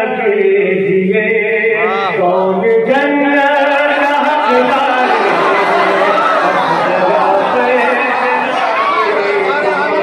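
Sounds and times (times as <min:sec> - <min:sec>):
men calling out together: 0:04.2 - 0:10.0.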